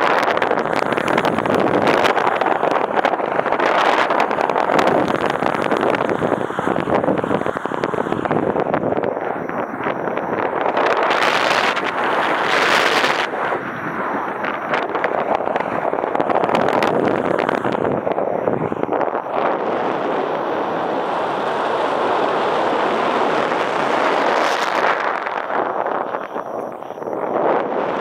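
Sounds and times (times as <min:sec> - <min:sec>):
wind rushing over microphone: 0:00.0 - 0:28.0.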